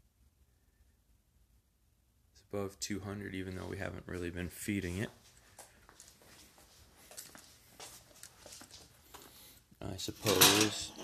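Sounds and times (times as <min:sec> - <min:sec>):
soft clicks and rustles: 0:04.9 - 0:09.4.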